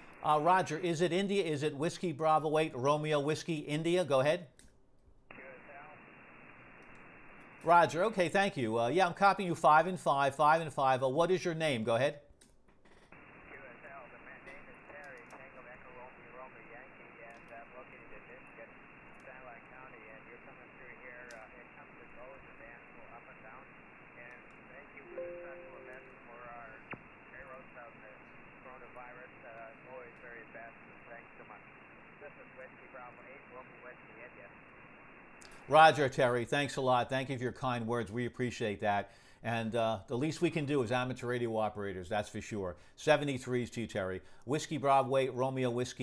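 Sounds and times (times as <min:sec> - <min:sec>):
faint radio speech: 0:00.0 - 0:04.3, 0:05.3 - 0:06.2, 0:13.3 - 0:34.8
radio hiss: 0:00.0 - 0:04.6, 0:05.3 - 0:12.3, 0:13.0 - 0:46.0.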